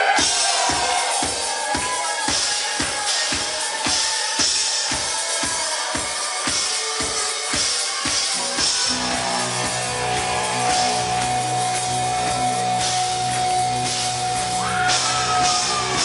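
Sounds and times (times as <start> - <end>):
kick drum beat: 0.2 - 11.4
bass and guitars chord: 8.8 - 16.0.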